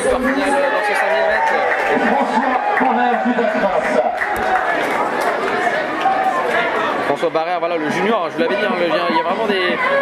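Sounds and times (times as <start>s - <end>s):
crowd murmur: 0.0s - 10.0s
several voices chattering: 0.0s - 10.0s.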